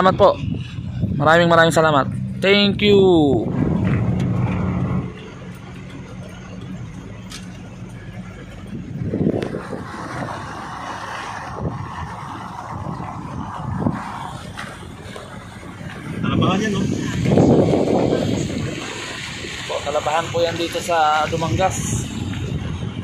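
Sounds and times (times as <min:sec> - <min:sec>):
road and wind noise: 0:00.0 - 0:23.0
vehicle engine hum: 0:00.0 - 0:23.0.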